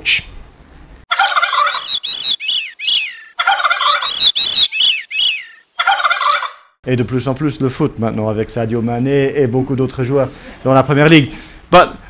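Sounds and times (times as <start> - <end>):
bird calls: 1.1 - 6.8.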